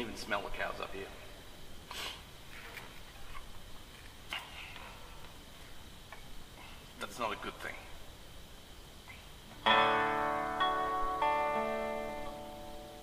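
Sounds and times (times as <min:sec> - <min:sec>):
faint high-pitched hum: 0:00.0 - 0:13.0
man sniffing: 0:01.9 - 0:02.3.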